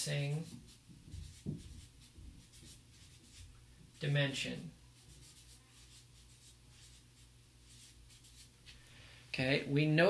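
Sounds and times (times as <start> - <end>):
marker scratching on paper: 0.2 - 8.6.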